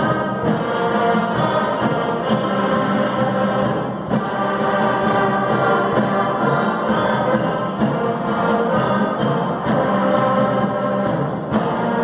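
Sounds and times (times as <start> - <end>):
concert band playing held chords: 0.0 - 12.0.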